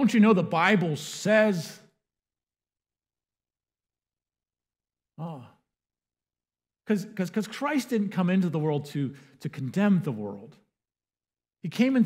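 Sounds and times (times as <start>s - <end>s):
man sighing: 5.2s - 5.6s.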